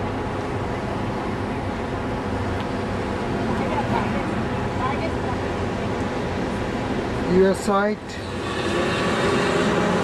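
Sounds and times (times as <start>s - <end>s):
waterfall roaring: 8.2s - 10.0s.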